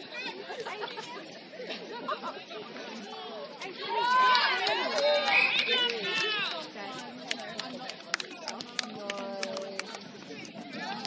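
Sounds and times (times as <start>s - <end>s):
voices calling and chattering: 0.0s - 11.0s.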